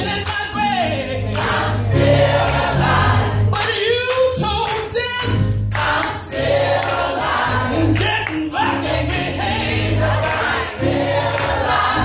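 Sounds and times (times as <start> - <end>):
gospel choir singing: 0.8 - 3.7, 5.2 - 12.0.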